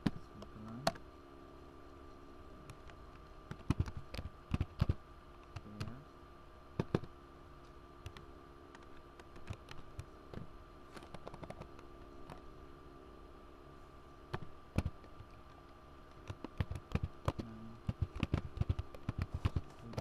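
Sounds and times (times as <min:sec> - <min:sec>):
faint steady hum: 0:00.0 - 0:20.0
keyboard typing: 0:02.7 - 0:06.0, 0:08.8 - 0:10.1, 0:11.0 - 0:11.8, 0:14.3 - 0:15.5, 0:16.1 - 0:20.0.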